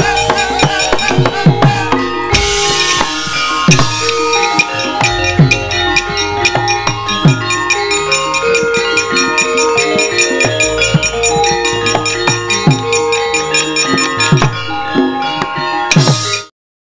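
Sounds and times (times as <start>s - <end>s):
metallophones ringing: 0.0s - 16.5s.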